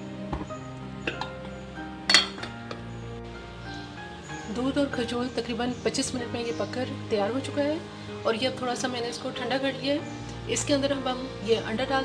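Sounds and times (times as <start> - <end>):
background music with held notes: 0.0 - 12.0
utensil clinking on metal pot: 1.0 - 1.5, 2.1 - 2.8.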